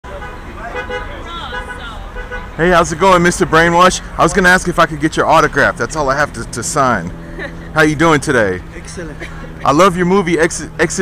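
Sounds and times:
people talking indistinctly: 0.0s - 11.0s
traffic rumble: 0.0s - 11.0s.

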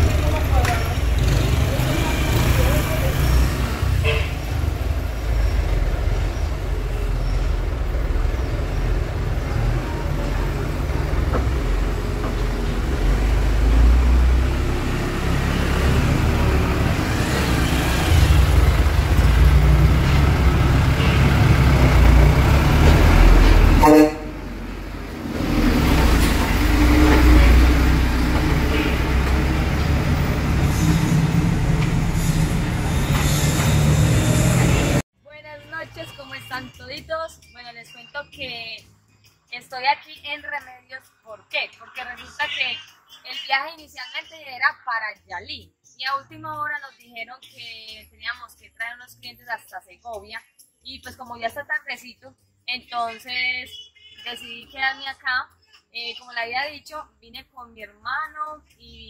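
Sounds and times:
truck engine rumbling: 0.0s - 35.1s.

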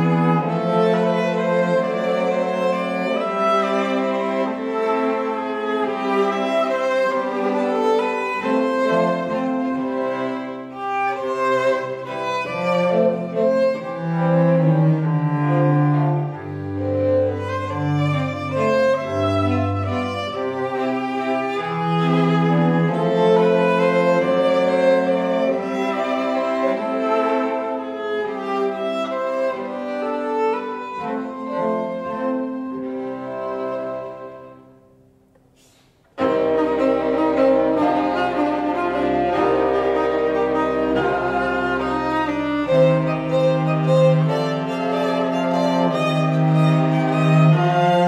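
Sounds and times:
string quartet playing a tango: 0.0s - 48.0s.

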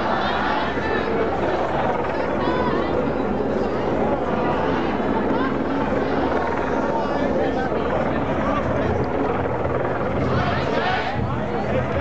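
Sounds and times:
crowd talking: 0.0s - 12.0s
helicopter rotor: 0.0s - 12.0s.

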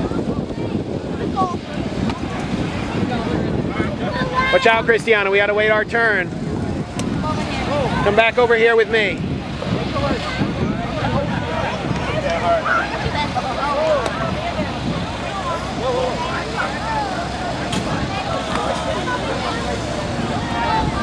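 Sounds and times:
crowd chatter: 0.0s - 21.0s
wind rumble on microphone: 0.0s - 21.0s.

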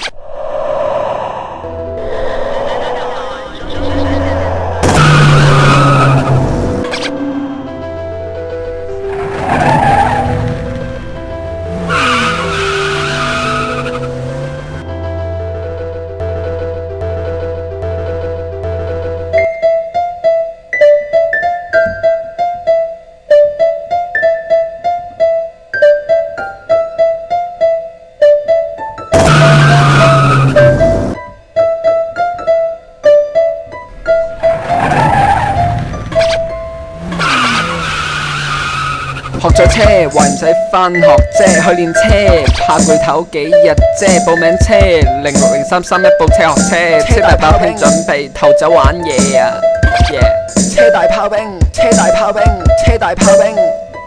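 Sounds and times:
car tyres squealing: 2.0s - 14.8s, 29.1s - 31.2s, 33.9s - 40.5s
music with a beat: 41.2s - 43.1s, 43.7s - 45.7s, 48.8s - 50.9s, 51.6s - 53.5s.

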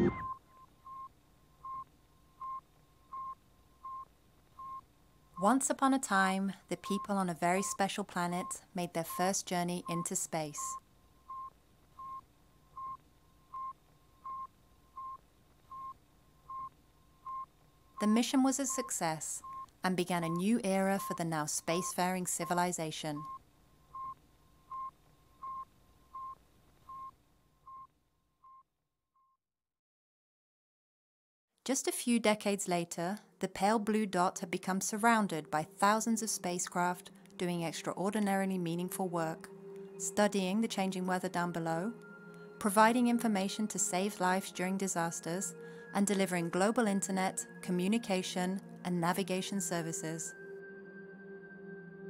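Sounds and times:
short radio beeps: 0.0s - 0.4s
radio beacon beeps: 0.0s - 1.0s, 6.9s - 12.2s, 20.2s - 23.4s
music chord: 37.0s - 48.9s, 49.5s - 52.0s.

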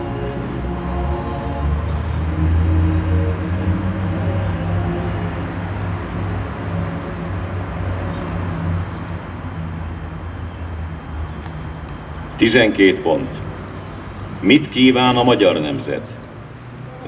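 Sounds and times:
music: 0.0s - 9.4s
low outdoor rumble: 0.0s - 17.0s.

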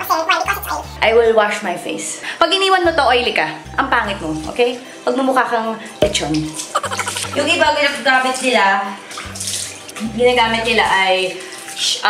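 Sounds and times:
hands splashing water: 6.0s - 7.5s
water running from sink tap: 6.0s - 12.0s.

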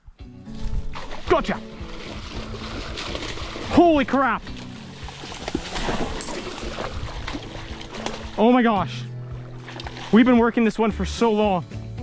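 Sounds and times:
fish thrashing in water: 0.9s - 8.5s, 9.2s - 10.3s
sharp water slaps: 0.9s - 8.6s, 9.2s - 10.3s.

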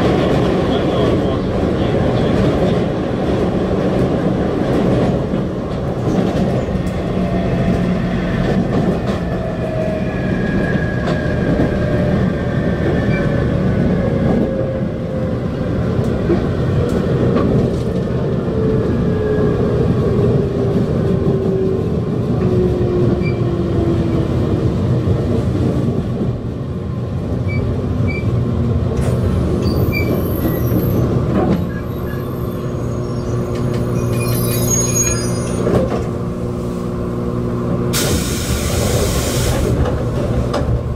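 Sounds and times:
train wheels rumbling on rail: 0.0s - 40.9s.

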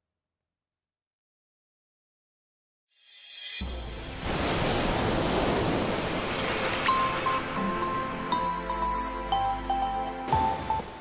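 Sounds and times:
surging water noise: 3.9s - 9.3s.

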